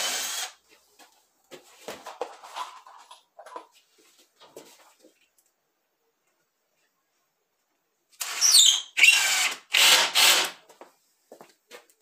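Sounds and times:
cordless drill driving screws: 0:00.0 - 0:00.6, 0:08.2 - 0:10.6.

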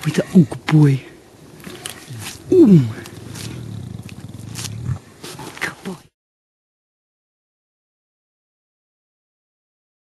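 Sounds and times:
lion low pulsing rumble: 0:01.6 - 0:05.6.

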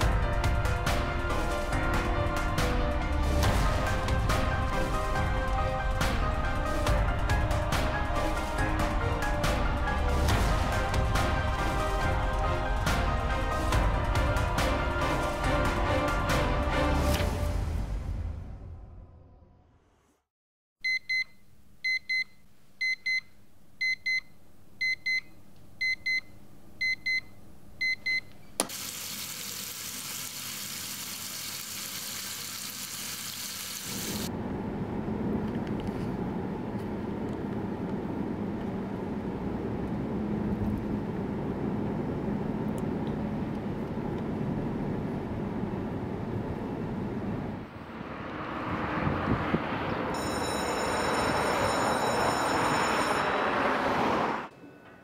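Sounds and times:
alarm clock double beeps: 0:20.8 - 0:23.2
low rumble of city ambience: 0:34.3 - 0:55.0.

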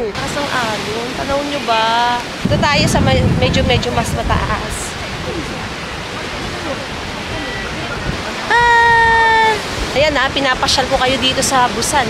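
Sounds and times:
wind rumbling on microphone: 0:00.0 - 0:12.0
surf breaking on rocks: 0:00.1 - 0:12.0.

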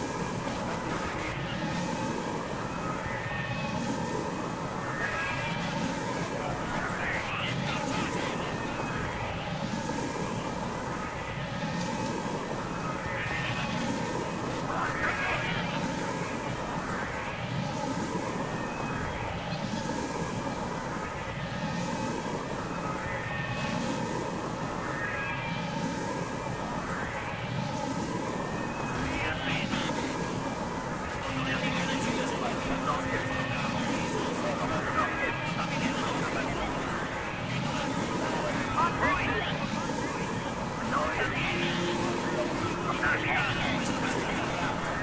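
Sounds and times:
droning noise with held tones: 0:00.0 - 0:45.0.

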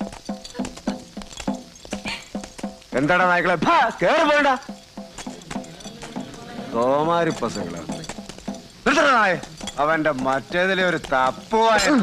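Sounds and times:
horse hooves clip-clopping: 0:00.0 - 0:12.0.

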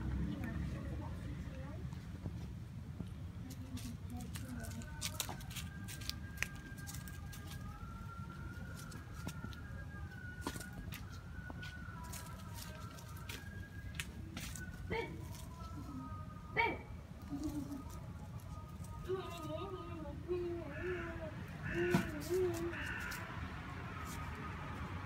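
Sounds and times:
low steady rumble: 0:00.0 - 0:10.1.

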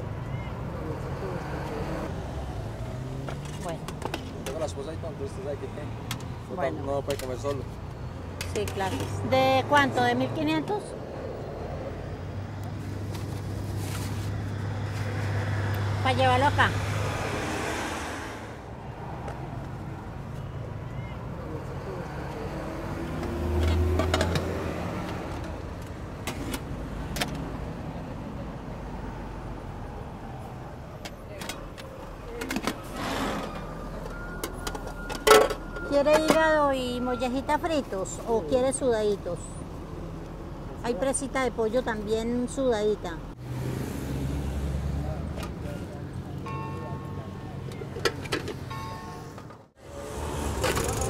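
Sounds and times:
vehicle engines rumbling: 0:00.0 - 0:51.0.

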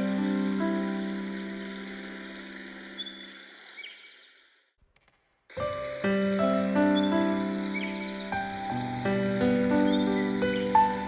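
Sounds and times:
piano chord: 0:00.0 - 0:03.1, 0:05.6 - 0:11.0
bird chirps: 0:00.0 - 0:04.6, 0:05.6 - 0:11.0
forest ambience: 0:00.0 - 0:04.7, 0:05.5 - 0:11.0.

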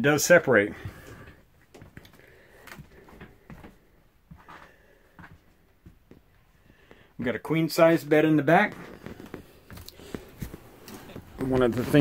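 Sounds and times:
faint footsteps: 0:00.6 - 0:12.0.

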